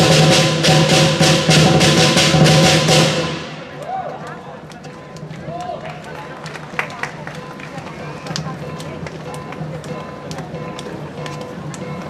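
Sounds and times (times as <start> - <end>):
percussion band playing softly: 0.0 - 12.0
voices in a hall: 1.6 - 12.0.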